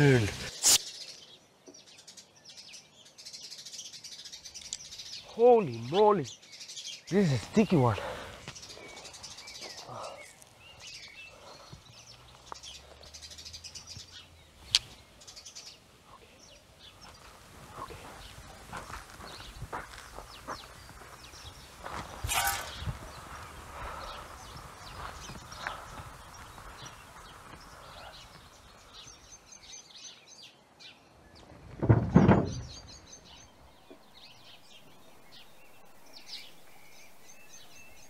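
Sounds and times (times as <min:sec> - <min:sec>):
small birds chirping: 0:00.0 - 0:38.0.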